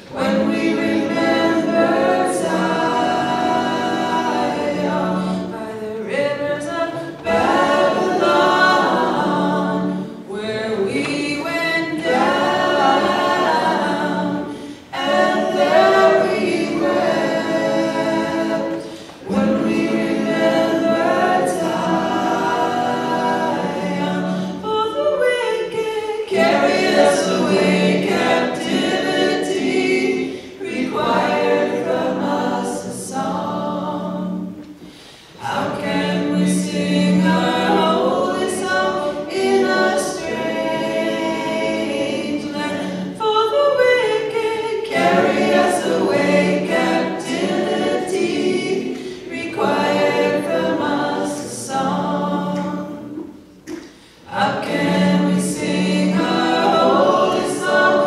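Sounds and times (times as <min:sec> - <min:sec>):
voices singing unaccompanied: 0:00.0 - 0:58.0.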